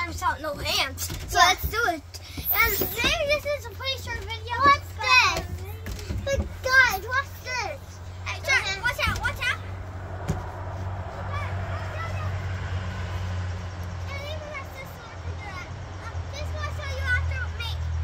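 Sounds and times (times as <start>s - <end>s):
children calling out: 1.5s - 9.9s, 11.0s - 13.3s.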